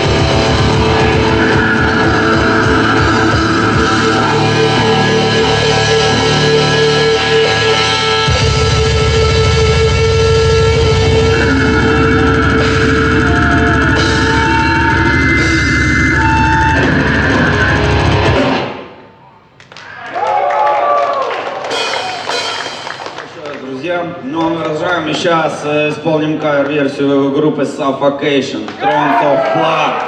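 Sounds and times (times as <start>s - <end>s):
death metal band playing live: 0.0s - 19.0s
voices and shouts: 28.7s - 30.0s.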